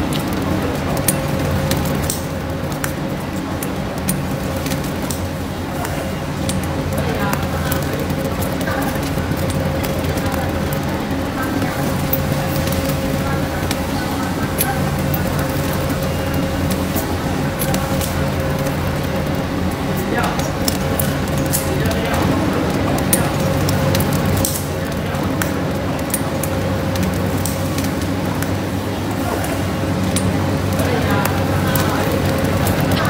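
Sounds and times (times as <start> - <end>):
rubber mill humming and whining: 0.0 - 33.0
rubber sheet crackling and clicking: 0.0 - 33.0.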